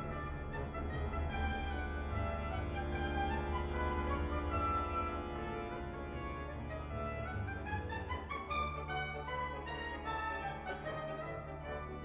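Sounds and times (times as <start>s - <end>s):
orchestral music with bowed strings: 0.0s - 12.0s.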